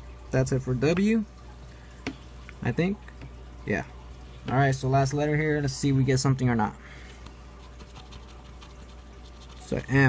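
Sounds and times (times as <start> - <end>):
low steady hum: 0.0 - 10.0
fingernail scratching ticket: 7.6 - 9.9.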